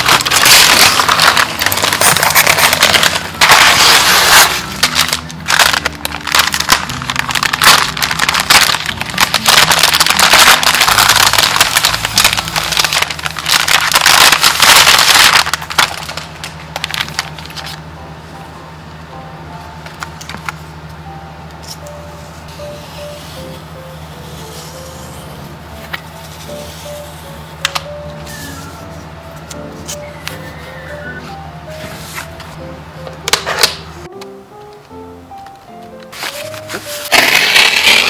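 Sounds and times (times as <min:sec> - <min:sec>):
packing paper rustling: 0:00.0 - 0:17.8, 0:36.0 - 0:38.0
soft background music: 0:00.0 - 0:38.0.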